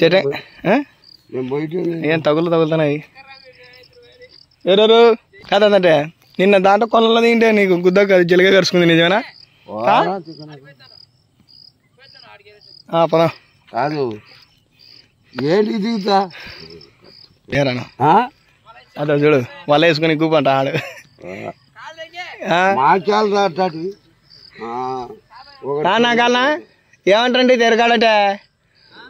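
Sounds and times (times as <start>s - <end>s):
man talking: 0.0s - 3.9s, 4.6s - 11.0s, 12.9s - 14.3s, 15.3s - 21.5s, 22.4s - 28.4s
insects chirping: 0.0s - 29.0s.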